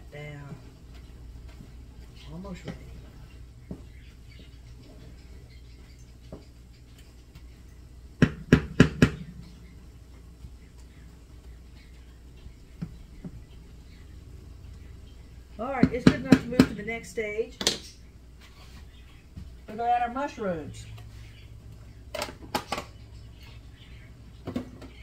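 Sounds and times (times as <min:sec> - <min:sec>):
steady low hum: 0:00.0 - 0:25.0
spatula knocking against pan: 0:08.2 - 0:09.4.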